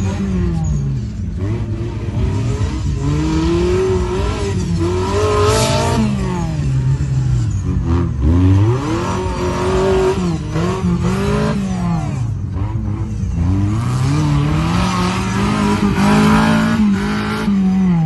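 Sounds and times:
buggy engine revving: 0.0 - 18.0.

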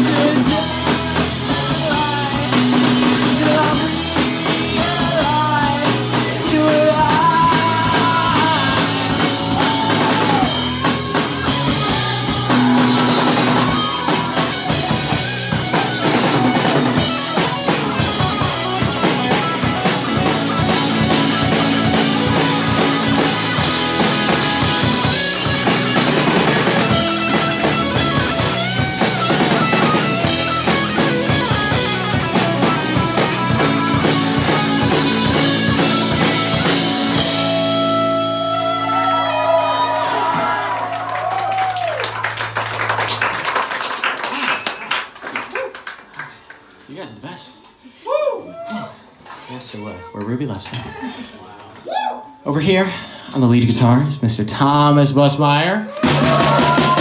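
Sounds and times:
drum kit with cymbals: 0.0 - 38.5, 56.0 - 57.0
bass guitar: 0.0 - 44.4, 51.8 - 57.0
electric guitars: 0.0 - 44.7, 55.9 - 57.0.

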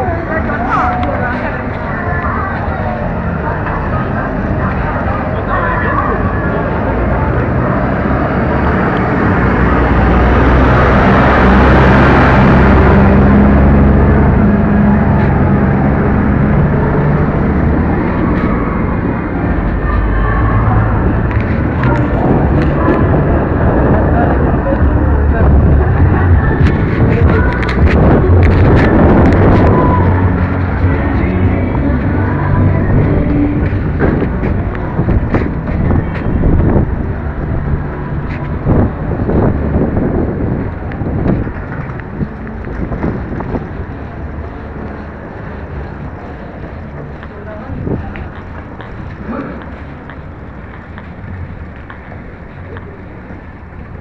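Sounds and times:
indistinct voices: 0.0 - 54.0
rumbling street noise: 0.0 - 54.0.

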